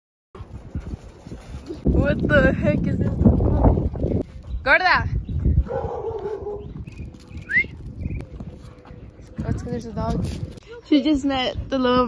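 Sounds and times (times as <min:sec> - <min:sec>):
low wind: 0:00.4 - 0:12.0
street noise: 0:00.4 - 0:12.0.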